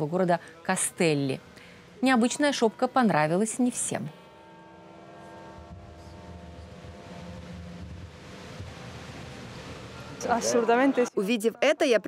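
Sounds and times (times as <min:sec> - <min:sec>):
low hum: 0:00.0 - 0:10.7
steady tones: 0:00.0 - 0:12.0.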